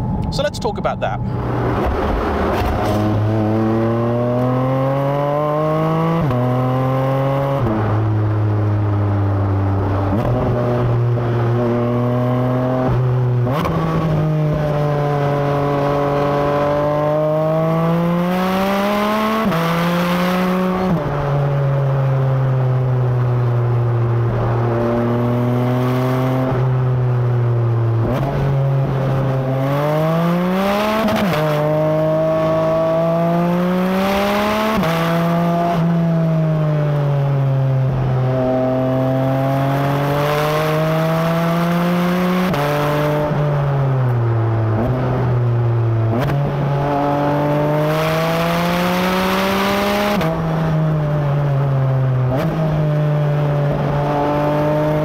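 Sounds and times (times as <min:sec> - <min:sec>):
car engine revving through gears: 0:01.3 - 0:55.0.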